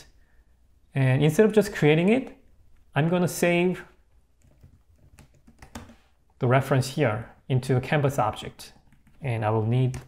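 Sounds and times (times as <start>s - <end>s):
typing on computer keyboard: 4.4s - 6.0s, 8.8s - 10.0s.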